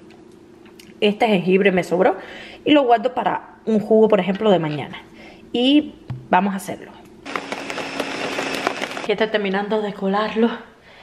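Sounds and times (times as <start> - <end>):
blender running: 7.2 - 9.1.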